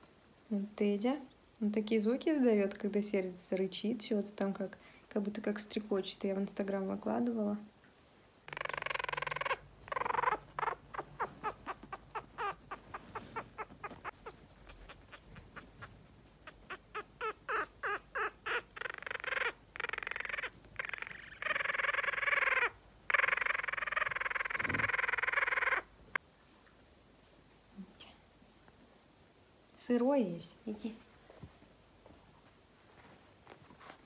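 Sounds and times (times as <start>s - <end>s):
puppy growling: 8.5s - 25.9s.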